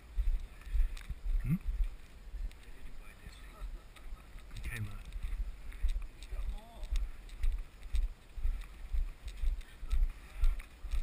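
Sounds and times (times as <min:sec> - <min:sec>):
camera thumping from walking: 0:00.0 - 0:11.0
faint voices: 0:00.4 - 0:11.0.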